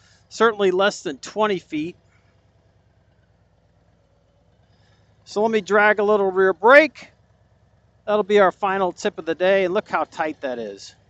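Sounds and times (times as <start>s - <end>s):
motorcycle engine rumbling near idle: 0.0s - 11.0s.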